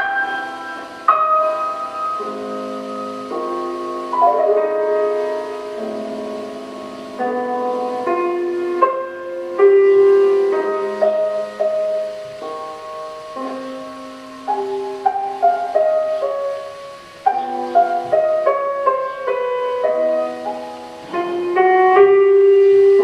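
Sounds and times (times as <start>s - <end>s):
slow solo piano: 0.0s - 23.0s.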